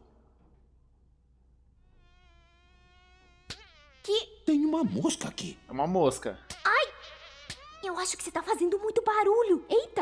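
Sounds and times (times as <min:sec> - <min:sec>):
fly buzzing: 0:01.7 - 0:10.0.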